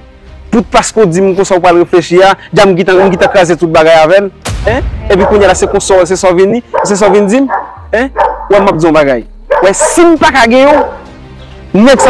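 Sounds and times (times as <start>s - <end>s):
man talking: 0.5s - 11.0s, 11.7s - 12.0s.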